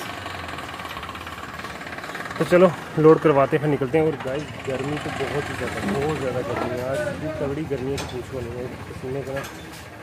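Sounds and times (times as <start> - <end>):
engine idling with clatter: 0.0 - 10.0.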